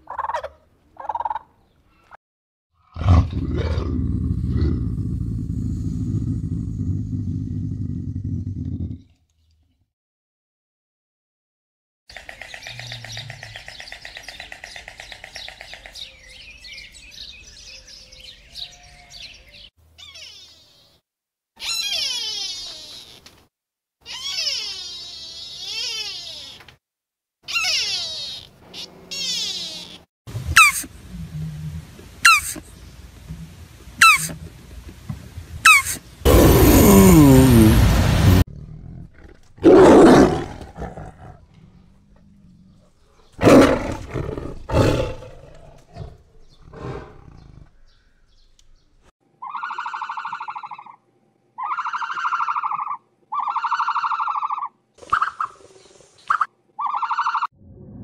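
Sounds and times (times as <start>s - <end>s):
tiger roaring and growling: 2.8s - 9.1s, 36.2s - 47.9s
high animal calls: 20.0s - 20.9s, 21.6s - 23.3s, 24.0s - 26.7s, 27.4s - 31.6s, 32.2s - 32.6s, 34.0s - 34.4s, 35.6s - 38.0s, 49.4s - 51.0s, 51.6s - 55.6s, 56.3s - 57.6s.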